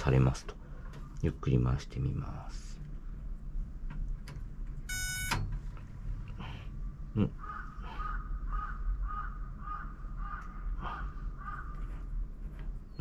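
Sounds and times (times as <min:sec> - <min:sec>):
short electronic beep: 0:04.9 - 0:05.4
crow cawing: 0:07.4 - 0:11.8.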